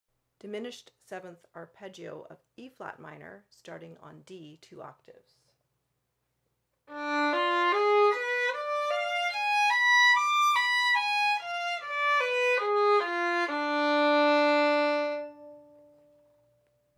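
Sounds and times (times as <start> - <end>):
solo violin arpeggio: 6.9 - 15.6.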